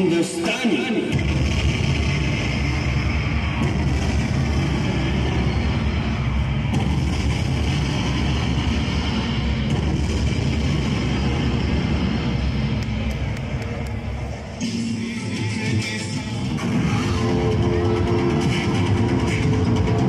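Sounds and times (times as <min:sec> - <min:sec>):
loud low rumbling: 0:01.1 - 0:14.7.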